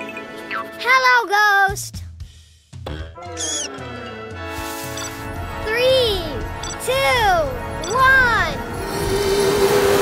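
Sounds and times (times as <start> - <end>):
background music with held chords: 1.9 - 10.0
squeaky cartoon voice: 3.2 - 3.9.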